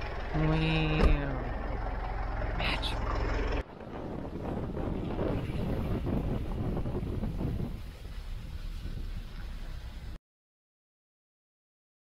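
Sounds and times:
moving vehicle rumble: 0.0s - 10.2s
voices: 0.3s - 1.6s.

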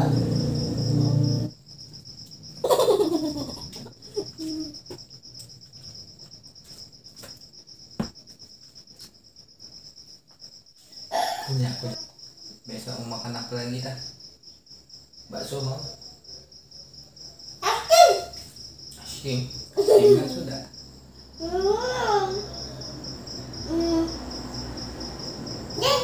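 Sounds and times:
high-pitched insect chirping: 0.0s - 26.0s.

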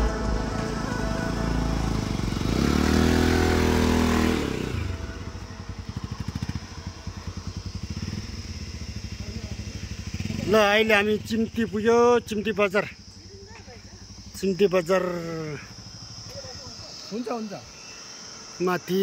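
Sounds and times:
motorcycle engine revving: 0.0s - 18.7s
motorcycle idling: 0.0s - 19.0s.

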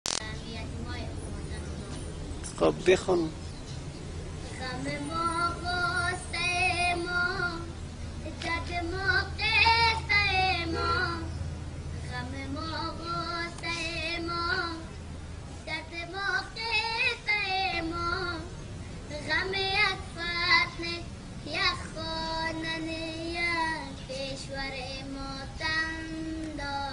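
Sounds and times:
boy singing: 0.2s - 1.9s, 4.4s - 11.4s, 12.0s - 15.0s, 15.6s - 26.9s.

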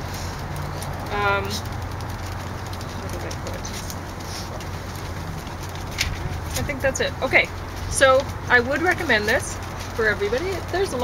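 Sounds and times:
outdoor background hum and hiss: 0.0s - 11.0s.

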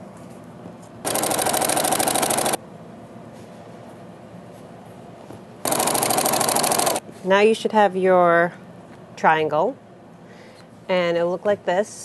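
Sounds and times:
sewing machine stitching: 1.1s - 2.6s, 5.7s - 7.0s.

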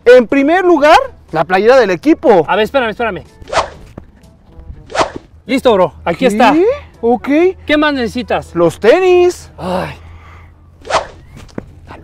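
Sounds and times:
quick whoosh: 3.4s - 3.9s, 4.8s - 5.3s, 10.8s - 11.3s.

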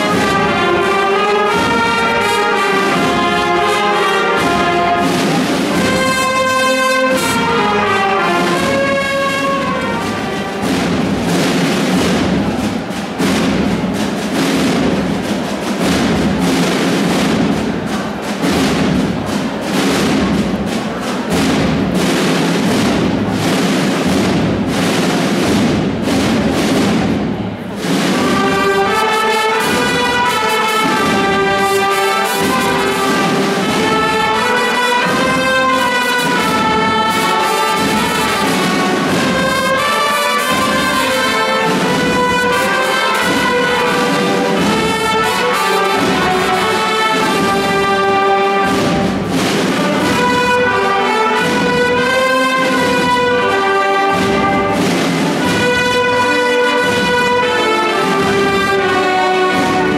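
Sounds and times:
brass band playing a march: 0.0s - 59.9s
busy drumming: 0.0s - 59.9s.

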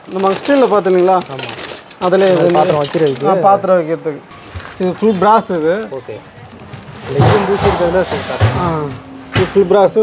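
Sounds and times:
handling noise: 6.3s - 9.6s
man talking: 7.1s - 10.0s.

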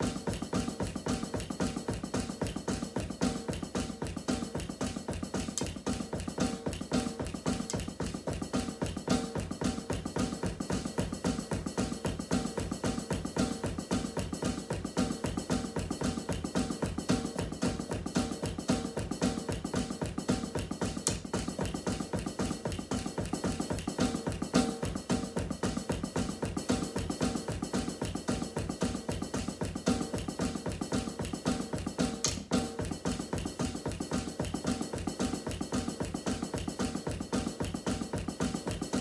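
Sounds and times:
drums played with sticks: 0.0s - 39.0s.

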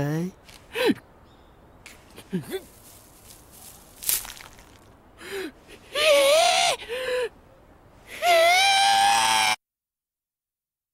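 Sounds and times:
man screaming: 8.2s - 9.6s.

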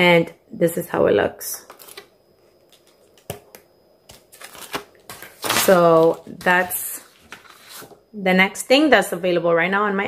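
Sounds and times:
paper rustling: 4.1s - 8.0s.

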